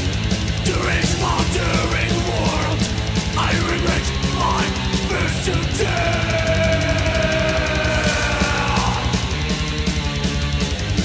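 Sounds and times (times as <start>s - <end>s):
thrash metal music: 0.0s - 11.0s.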